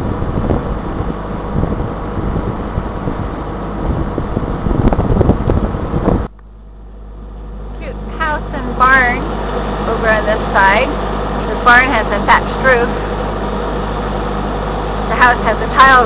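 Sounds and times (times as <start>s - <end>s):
wind buffeting microphone: 0.0s - 6.4s
boat engine humming: 0.0s - 16.0s.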